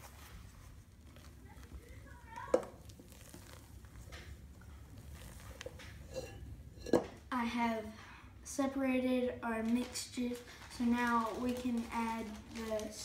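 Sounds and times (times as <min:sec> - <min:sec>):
spoon scraping and squishing batter: 0:00.0 - 0:07.2.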